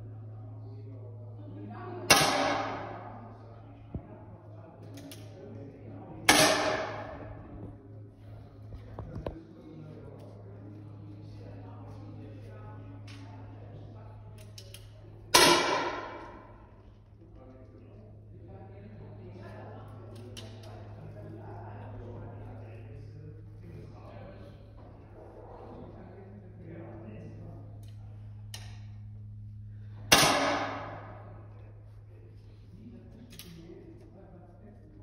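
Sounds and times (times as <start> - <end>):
rifle shot ringing out: 2.1 - 3.2, 6.3 - 7.5, 15.4 - 16.4, 30.1 - 31.3.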